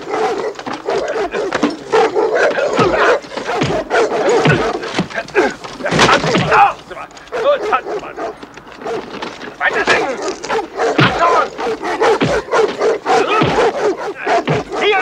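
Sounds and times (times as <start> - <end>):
people shouting: 0.0 - 8.3, 9.0 - 15.0
dogs barking: 0.0 - 15.0.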